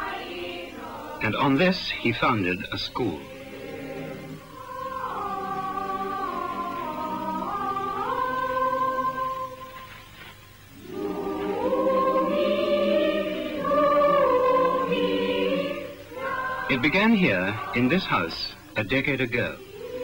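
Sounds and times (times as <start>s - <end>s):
choir holding long chords: 0.0s - 9.9s, 10.7s - 20.0s.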